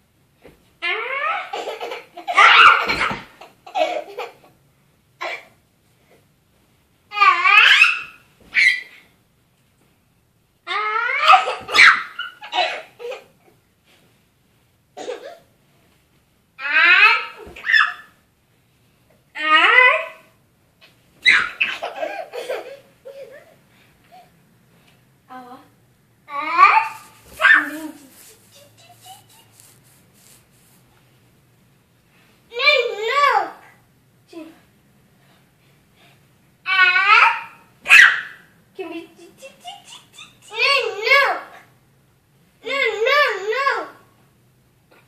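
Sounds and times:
toddler whining: 0.8s - 1.5s
young child squealing: 2.4s - 3.1s, 7.2s - 9.0s, 10.7s - 12.4s, 16.6s - 18.1s, 21.2s - 21.7s.

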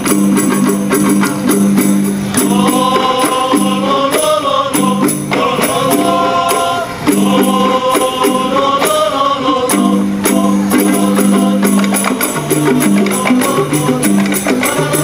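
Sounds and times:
hand-struck frame drums: 0.0s - 8.9s, 9.7s - 15.0s
young men singing together: 0.0s - 15.0s.

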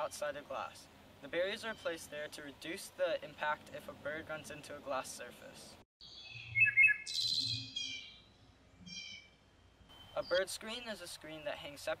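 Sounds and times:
songbird chirps and trill: 0.0s - 5.2s, 6.0s - 12.0s.

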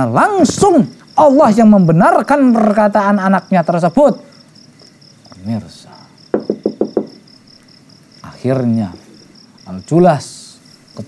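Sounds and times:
quick wooden knocks: 6.3s - 7.2s.

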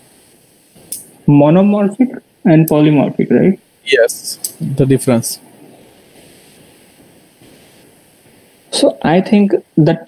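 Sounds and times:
faint microphone hiss: 0.0s - 10.0s.

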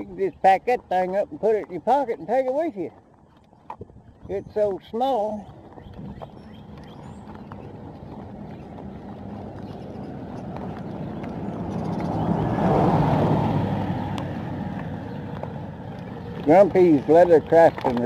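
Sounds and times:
wind and riding noise: 0.0s - 18.0s
vehicle passing by: 6.7s - 18.0s.

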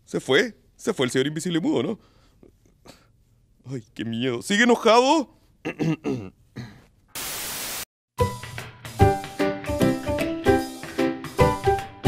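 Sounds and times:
static hiss: 7.2s - 7.9s.

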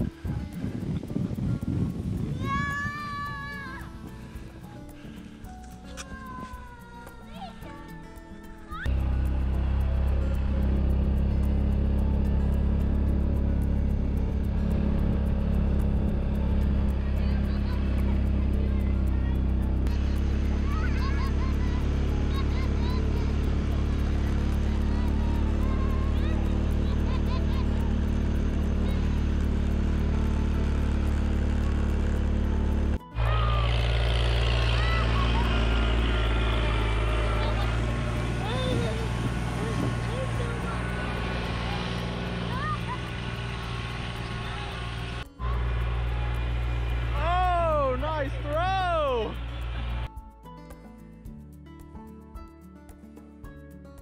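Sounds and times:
vehicle engine running: 0.0s - 50.3s
music: 0.0s - 54.0s.

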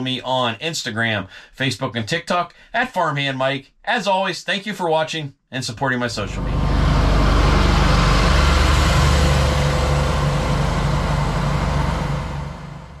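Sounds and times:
tractor diesel engine rumbling: 6.2s - 13.0s.

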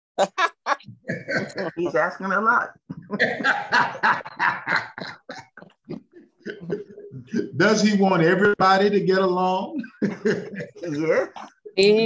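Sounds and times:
man laughing: 0.2s - 2.1s, 3.1s - 7.6s, 9.7s - 11.0s.

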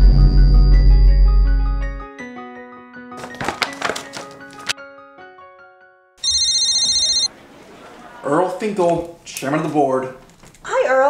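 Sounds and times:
phone ringtone warbling trill: 6.2s - 7.3s.

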